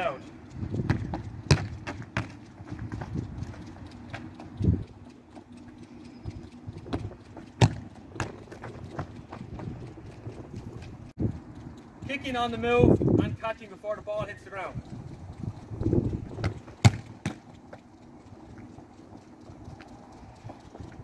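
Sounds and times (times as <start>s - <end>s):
ball bouncing on tarmac: 0.8s - 3.1s, 7.0s - 8.4s, 16.4s - 17.8s.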